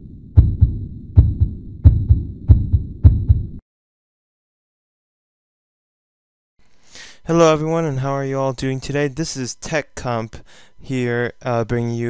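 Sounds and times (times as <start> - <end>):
heartbeat thumps: 0.4 - 3.6.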